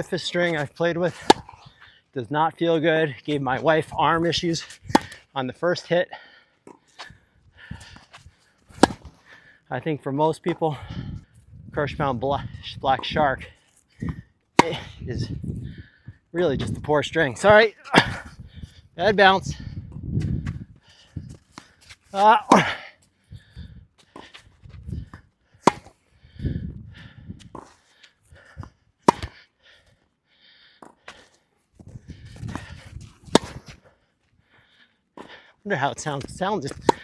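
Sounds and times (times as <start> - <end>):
tennis ball struck by racket: 1.2 - 1.6, 4.9 - 5.2, 8.7 - 9.2, 14.6 - 14.9, 25.6 - 26.0, 29.0 - 29.4, 33.2 - 33.8, 36.7 - 37.0
footsteps scuffing on clay: 6.7 - 9.3, 20.1 - 26.0, 30.8 - 37.0.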